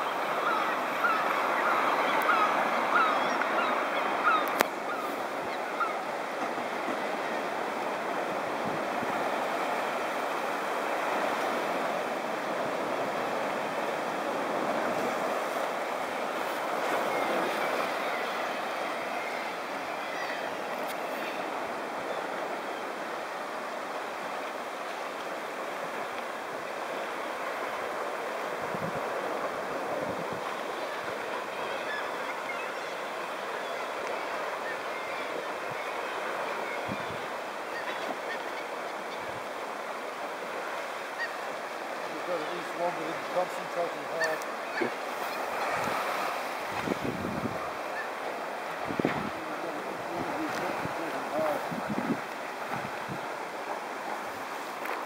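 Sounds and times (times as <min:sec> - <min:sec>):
surf washing against rocks: 0:00.0 - 0:55.0.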